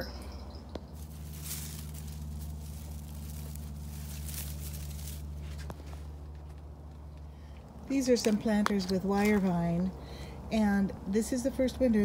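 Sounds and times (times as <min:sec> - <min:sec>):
steady low hum: 0:00.0 - 0:12.0
soft rustling: 0:00.7 - 0:07.3.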